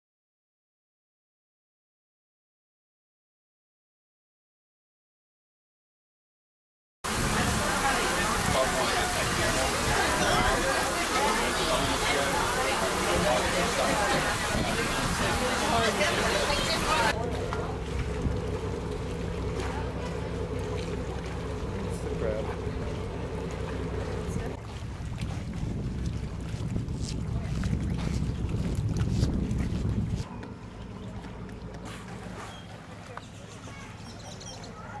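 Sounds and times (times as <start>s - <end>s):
wind noise on microphone: 7.1s - 10.9s, 13.5s - 17.1s, 24.7s - 30.3s
boat engine humming: 7.1s - 35.0s.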